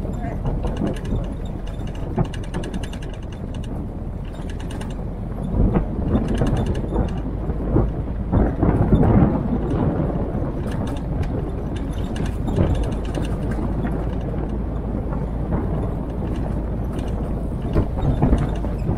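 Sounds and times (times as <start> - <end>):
metallic rattle of body parts: 0.0 - 18.9
vehicle engine running low: 0.0 - 18.9
vehicle jolting over bumps: 0.0 - 18.9.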